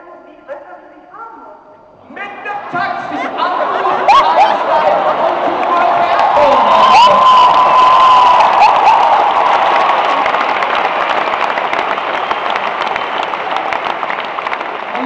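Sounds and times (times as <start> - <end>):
audience applauding and cheering: 2.3 - 15.0.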